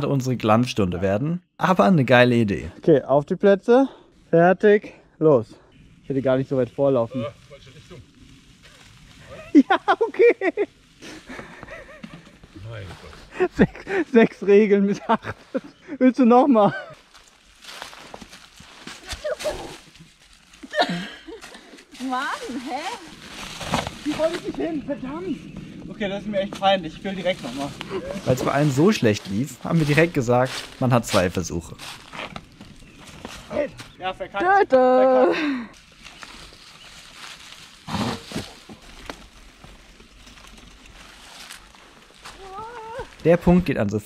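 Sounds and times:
bike tyres crackling over leaves: 0:06.0 - 0:14.4, 0:16.8 - 0:43.7.

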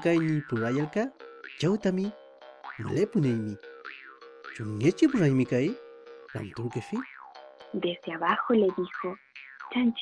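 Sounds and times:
narrator speaking: 0:00.0 - 0:02.1, 0:02.8 - 0:03.6, 0:04.6 - 0:05.8, 0:06.4 - 0:07.0, 0:07.8 - 0:09.2
soft background music: 0:00.0 - 0:09.3.

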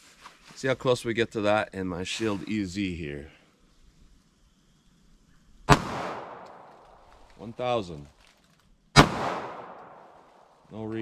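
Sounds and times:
pistol shot with echo: 0:05.7 - 0:06.7, 0:09.0 - 0:10.1.

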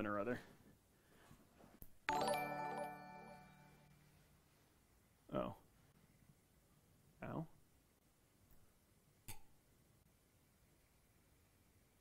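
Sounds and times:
bright electronic chime: 0:02.1 - 0:04.1.

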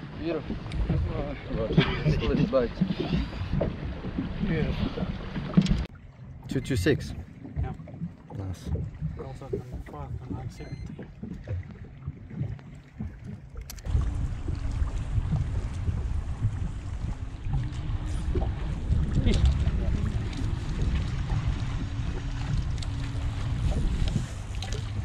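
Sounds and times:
wind rumble on microphone: 0:07.0 - 0:25.0
faint hum: 0:13.8 - 0:25.0.

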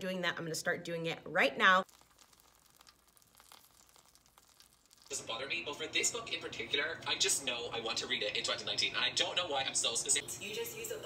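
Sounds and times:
faint sizzling crackle in pan: 0:01.8 - 0:06.5.

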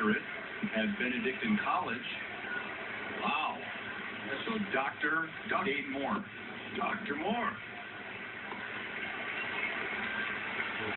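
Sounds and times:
baseball broadcast background noise: 0:00.0 - 0:10.9.

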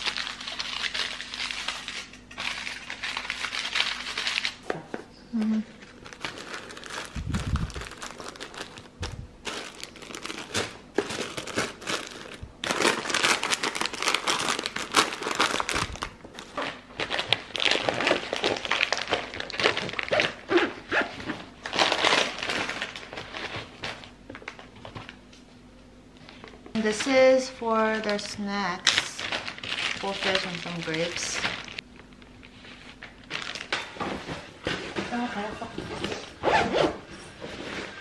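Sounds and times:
foil and wrappers crinkling: 0:00.0 - 0:04.6, 0:05.4 - 0:25.2, 0:26.3 - 0:35.6.

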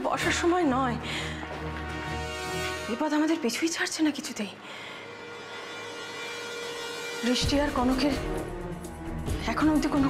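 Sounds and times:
held synth drone: 0:04.6 - 0:08.6.

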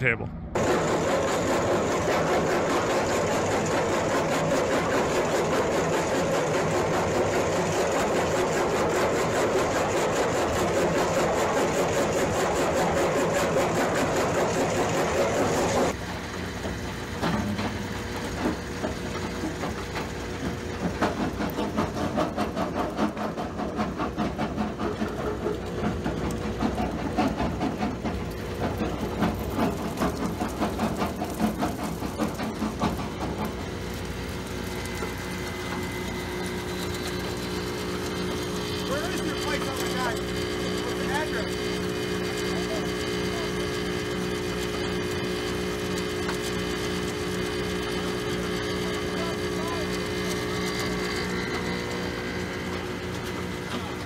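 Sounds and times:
conveyor belt humming: 0:00.0 - 0:54.0.

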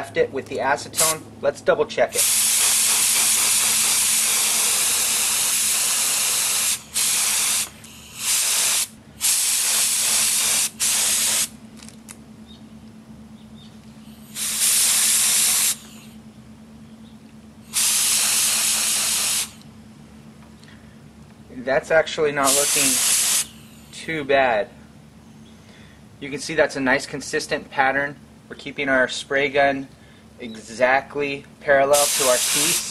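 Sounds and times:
spray gun hissing: 0:01.0 - 0:01.2, 0:02.1 - 0:11.5, 0:14.2 - 0:16.2, 0:17.7 - 0:19.6, 0:22.4 - 0:23.8, 0:32.0 - 0:32.9.

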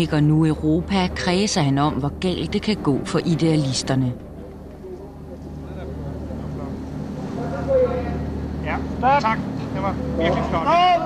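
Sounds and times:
crowd talking indistinctly: 0:00.0 - 0:11.0
steady low hum: 0:00.0 - 0:11.0.

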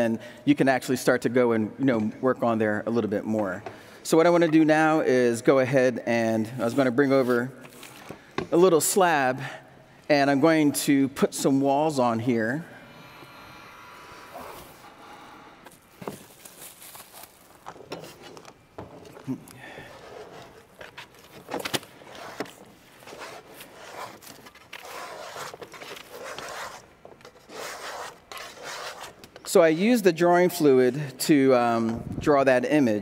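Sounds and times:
handling knocks and scrapes: 0:15.7 - 0:29.5
plastic sheeting rustling: 0:16.1 - 0:17.7.

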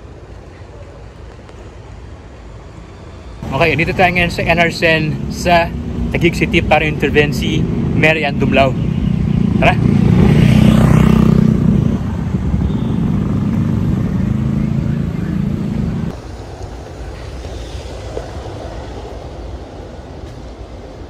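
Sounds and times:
vehicle engine running: 0:09.2 - 0:16.1.

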